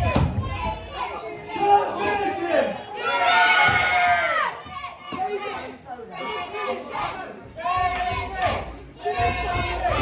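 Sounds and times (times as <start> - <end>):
children shouting: 0.0 - 10.0.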